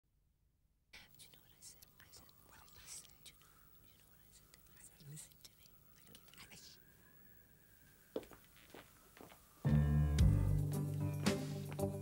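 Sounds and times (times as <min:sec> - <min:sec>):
faint whispering: 0:01.0 - 0:07.2.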